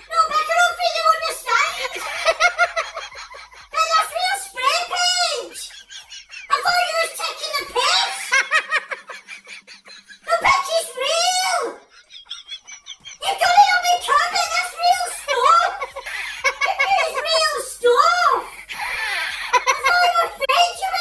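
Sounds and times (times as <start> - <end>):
person talking excitedly: 0.0 - 9.1, 10.1 - 12.0, 13.0 - 18.7, 19.4 - 21.0.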